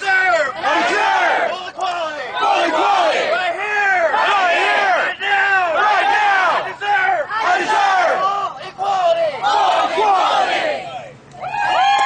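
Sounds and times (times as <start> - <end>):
protesters chanting in unison: 0.1 - 11.0.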